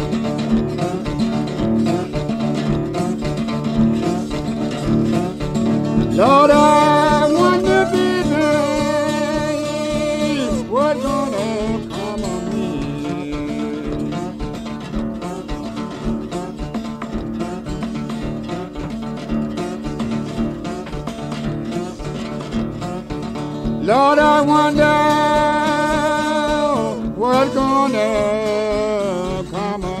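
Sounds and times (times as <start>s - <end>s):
blues slide guitar: 0.0s - 30.0s.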